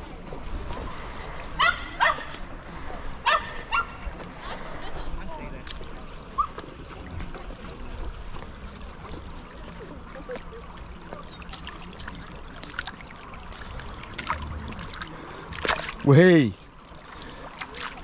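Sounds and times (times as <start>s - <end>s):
shallow river water trickling: 0.0s - 18.0s.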